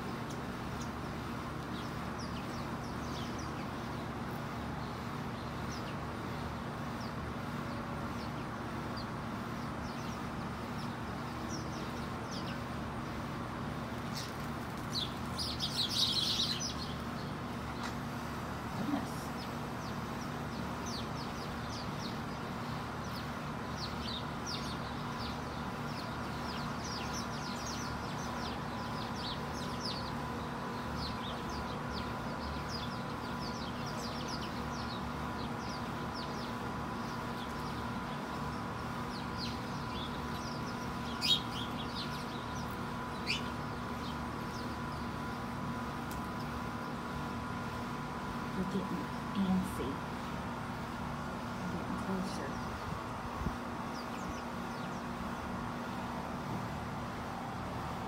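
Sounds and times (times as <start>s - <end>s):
sparrows chirping: 0.0s - 58.0s
steady hum: 0.0s - 58.0s.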